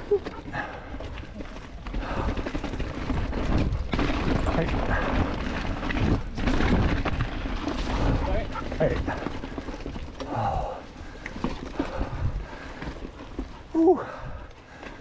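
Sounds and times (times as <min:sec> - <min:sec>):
bike rattling over rocks: 0:00.0 - 0:15.0
bike tyre rumble: 0:00.0 - 0:15.0.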